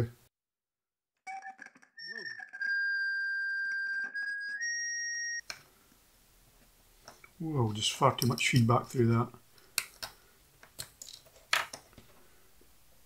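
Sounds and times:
high-pitched feedback whistle: 0:01.3 - 0:05.4.

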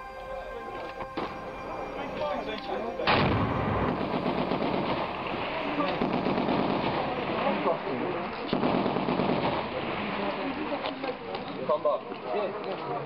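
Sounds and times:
gunfire: 0:03.1 - 0:10.4.

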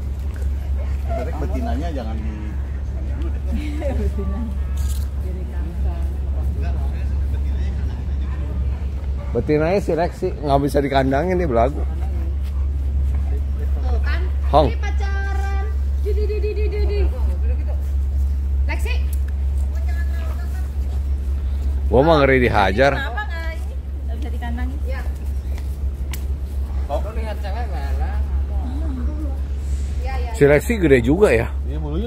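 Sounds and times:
faint voices talking: 0:00.0 - 0:32.0
low rumble: 0:00.0 - 0:32.0.

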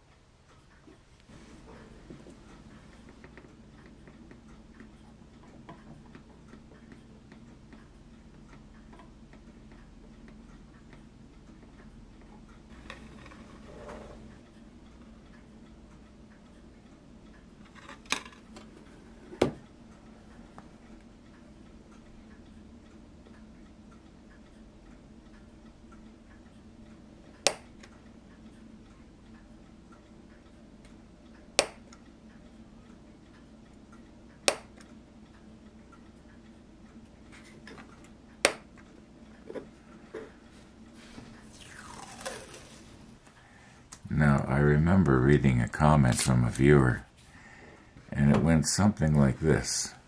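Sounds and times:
faint ticking clicks: 0:00.0 - 0:13.6, 0:14.2 - 0:50.0
low steady hum: 0:00.0 - 0:50.0.

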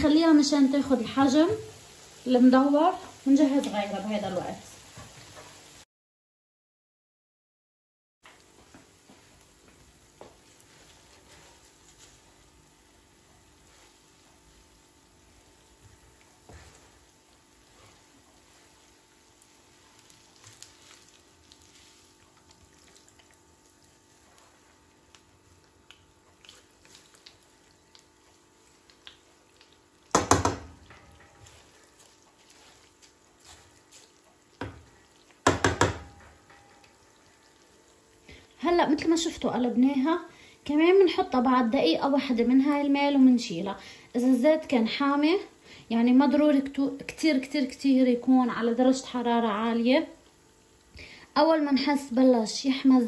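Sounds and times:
pastry sizzling in oil: 0:00.0 - 0:05.9, 0:08.3 - 0:53.0.

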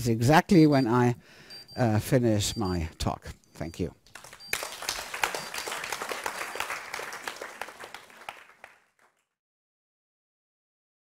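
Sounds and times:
audience applauding: 0:04.1 - 0:09.2.

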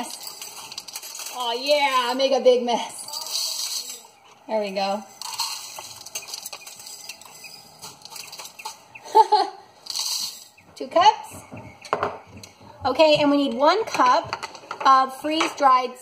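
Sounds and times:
dry shreds rattling into a cup: 0:00.0 - 0:02.3.

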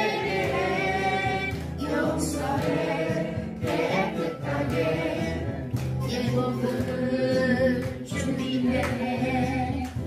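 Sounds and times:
group singing praise song: 0:00.0 - 0:10.0
instrumental accompaniment: 0:00.0 - 0:10.0.

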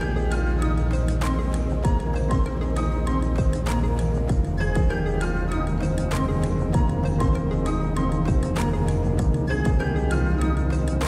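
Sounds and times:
instrumental music with steady beat: 0:00.0 - 0:11.0.

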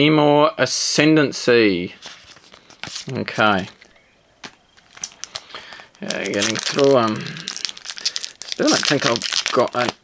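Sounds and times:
foil wrapper crinkling: 0:02.1 - 0:10.0.

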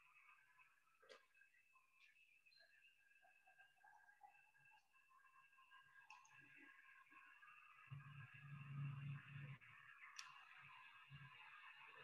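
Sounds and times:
faint clicks: 0:06.0 - 0:06.6, 0:10.1 - 0:10.6.

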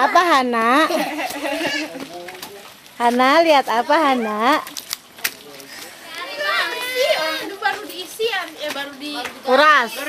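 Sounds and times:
children and adults chattering: 0:00.0 - 0:10.0.

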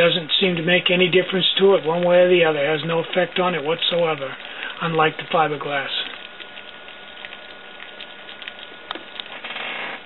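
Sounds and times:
alcohol stove hissing: 0:00.0 - 0:10.0.

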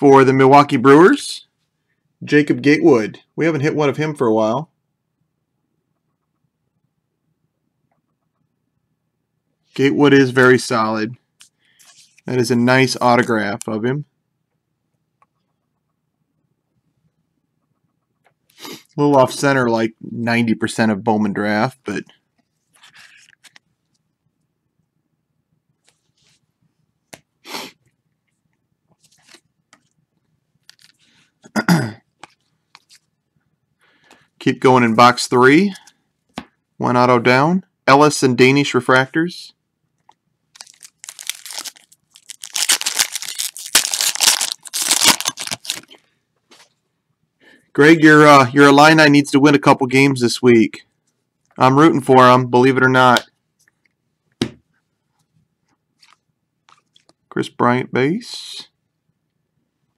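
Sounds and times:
trading cards being handled: 0:11.4 - 0:12.4, 0:22.7 - 0:23.7, 0:28.9 - 0:30.0, 0:30.6 - 0:31.1, 0:32.2 - 0:33.1, 0:40.0 - 0:46.7.

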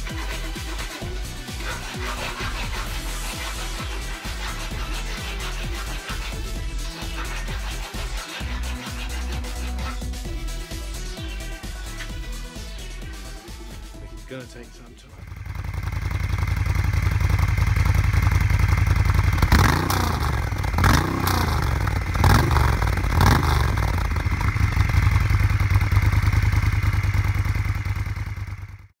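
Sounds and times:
motorcycle engine idling and revving: 0:00.0 - 0:29.0.

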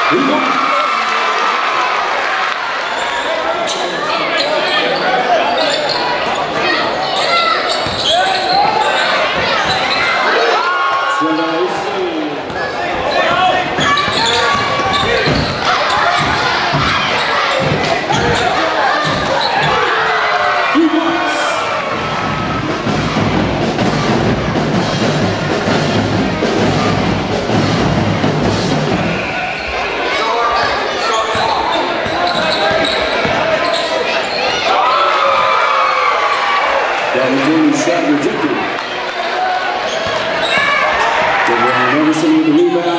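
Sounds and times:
crowd talking and calling out: 0:00.0 - 0:42.9.

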